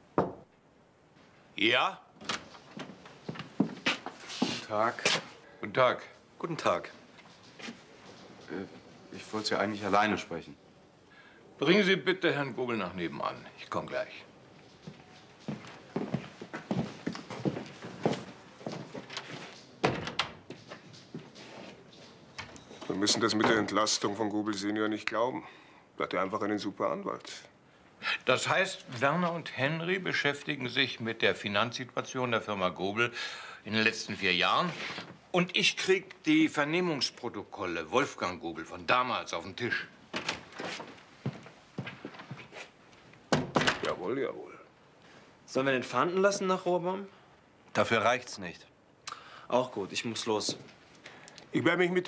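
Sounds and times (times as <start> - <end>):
man talking: 1.6 - 2.1, 4.6 - 7.0, 8.5 - 10.6, 11.6 - 14.3, 22.8 - 39.9, 43.8 - 44.7, 49.5 - 50.7, 51.5 - 52.0
footsteps walking: 2.4 - 5.4, 7.1 - 8.5, 14.5 - 22.8, 40.1 - 43.1, 50.4 - 51.0.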